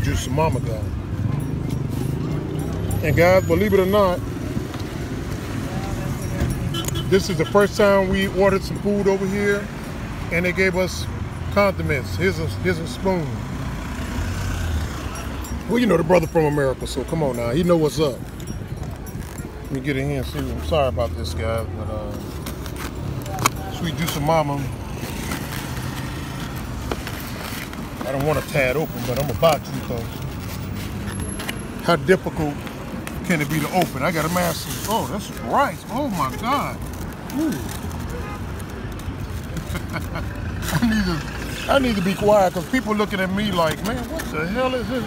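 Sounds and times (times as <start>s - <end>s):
car engine and road noise: 0.0s - 45.0s.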